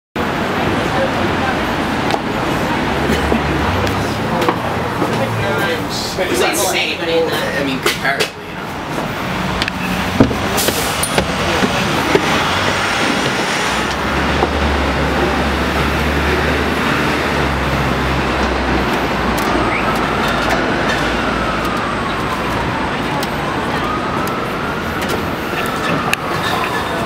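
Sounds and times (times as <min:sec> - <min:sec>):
road and traffic noise: 0:00.2 - 0:27.0.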